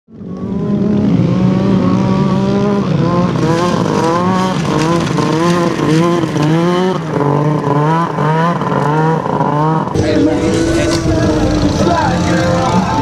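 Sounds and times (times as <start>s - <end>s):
snowmobile engine revving: 0.2s - 13.0s.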